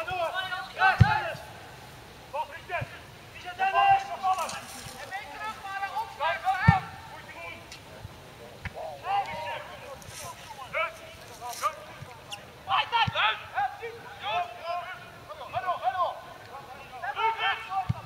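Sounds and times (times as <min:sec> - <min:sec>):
players shouting: 0:00.0 - 0:07.8, 0:08.6 - 0:18.0.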